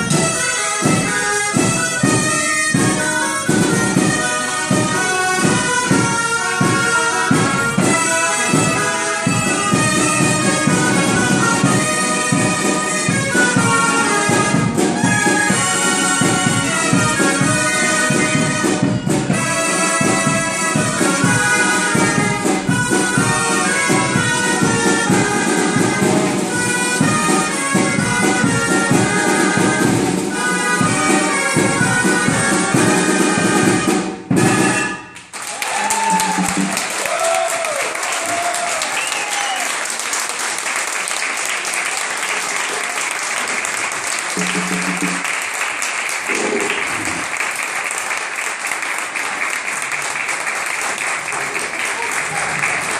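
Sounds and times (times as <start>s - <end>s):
steady drum beat: 0.0s - 35.0s, 36.0s - 37.0s, 44.4s - 45.5s
shawms playing a loud tune: 0.0s - 52.9s
applause and cheering: 35.1s - 52.9s.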